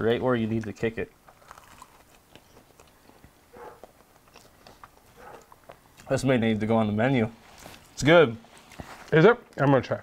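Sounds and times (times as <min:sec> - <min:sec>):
man chewing toasted sandwich: 0:00.5 - 0:06.1.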